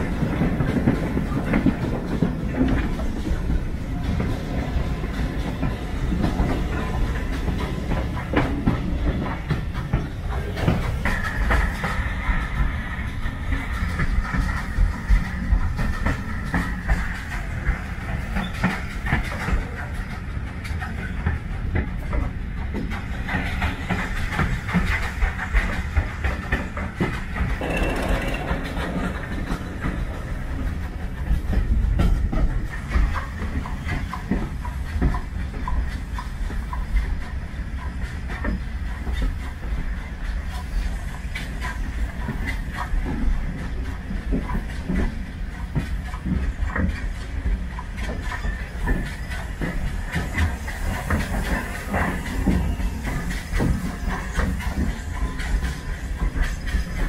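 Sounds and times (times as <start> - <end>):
train carriage rumble: 0.0 - 57.0
wheels clicking over rail joints: 0.0 - 57.0.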